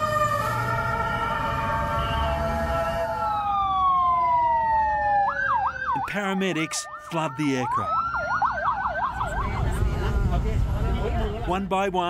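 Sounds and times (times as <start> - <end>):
emergency vehicle sirens: 0.0 - 11.6.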